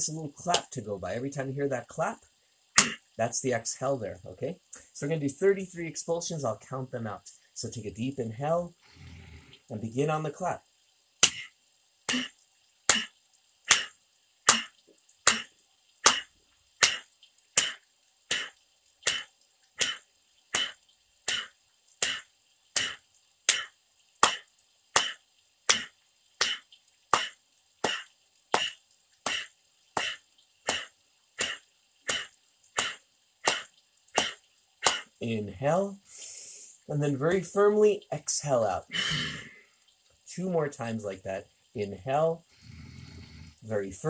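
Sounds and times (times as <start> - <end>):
hand claps: 22.8 - 24.4, 25.0 - 31.6, 33.5 - 35.1.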